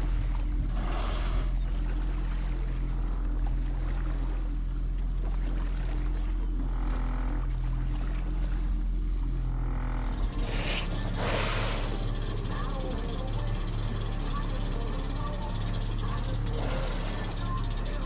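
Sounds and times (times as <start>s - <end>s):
boat engine humming: 0.0s - 18.0s
indistinct voices: 10.4s - 18.0s.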